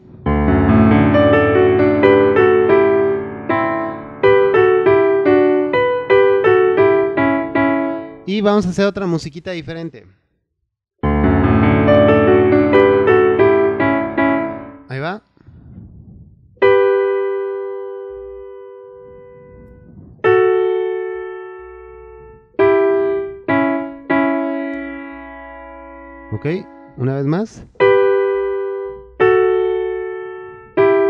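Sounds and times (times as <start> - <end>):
piano run of notes: 0.0 - 8.5, 11.0 - 15.0, 16.6 - 31.0
piano chords ringing: 0.0 - 8.7, 11.0 - 15.1, 16.6 - 31.0.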